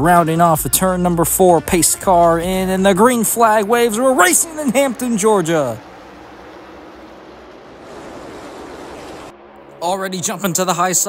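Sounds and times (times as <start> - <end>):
race cars roaring at speed: 0.0 - 11.0.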